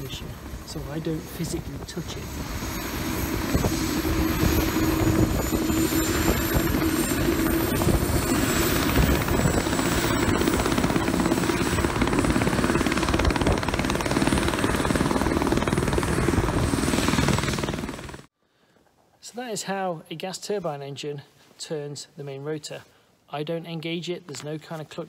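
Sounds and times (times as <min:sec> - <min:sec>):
helicopter engine and rotor noise: 0:00.0 - 0:18.3
helicopter turbine whine: 0:00.0 - 0:18.3.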